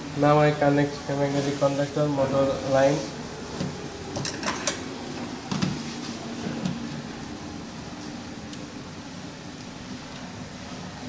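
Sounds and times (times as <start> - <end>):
steady low background hum: 0.0 - 11.0.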